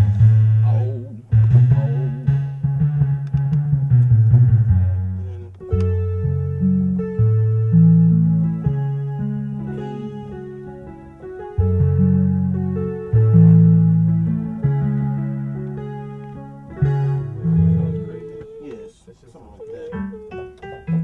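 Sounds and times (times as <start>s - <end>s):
sustained keyboard chord: 0.0s - 18.9s
walking bass line on keyboard: 0.0s - 18.9s.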